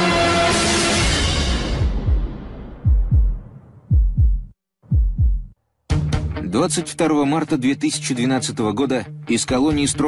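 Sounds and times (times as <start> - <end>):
heartbeat thumps: 1.8 - 5.6.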